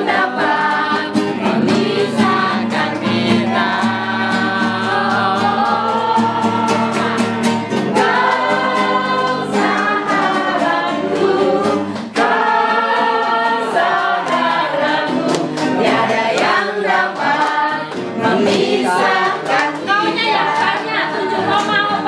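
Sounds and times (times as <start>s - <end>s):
group of people singing: 0.0s - 22.0s
hands clapping: 0.0s - 22.0s.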